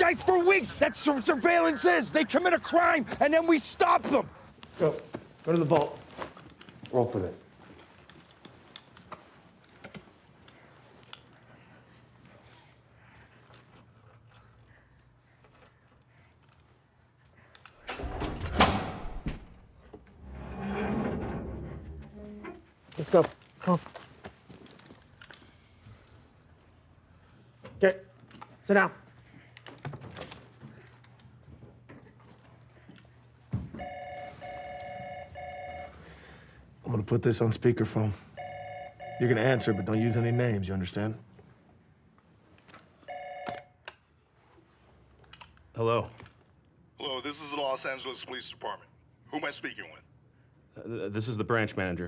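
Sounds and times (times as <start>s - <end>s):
desk telephone ringing: 33.8s - 36.1s, 38.4s - 40.5s, 43.0s - 43.8s.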